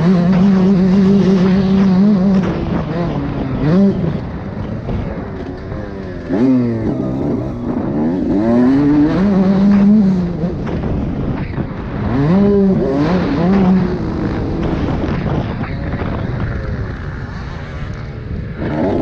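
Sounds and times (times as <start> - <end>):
motocross bike engine revving: 0.0 - 19.0.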